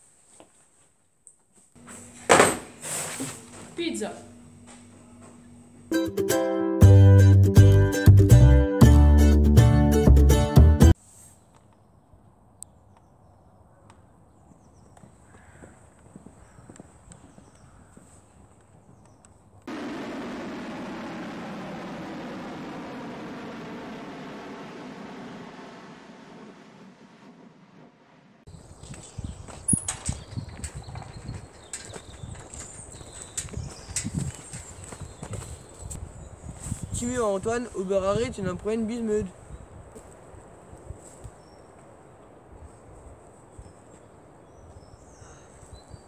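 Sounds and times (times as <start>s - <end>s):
footsteps on asphalt: 13.9s - 19.4s, 28.6s - 36.9s, 39.9s - 41.9s
jet airliner cabin roar: 19.7s - 28.4s.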